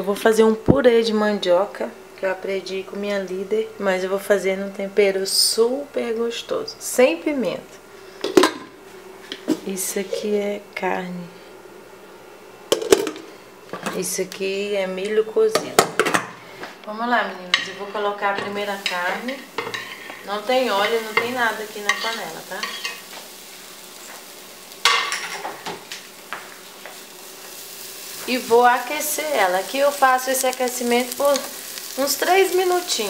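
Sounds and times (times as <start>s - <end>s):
kitchenware clattering: 8.2s - 8.7s, 12.7s - 14.0s, 17.5s - 23.1s, 24.8s - 25.8s
steady low hiss: 16.4s - 33.0s.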